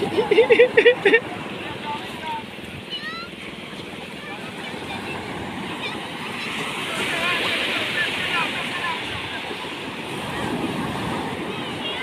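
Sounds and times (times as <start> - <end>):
surf breaking on beach: 0.0 - 12.0.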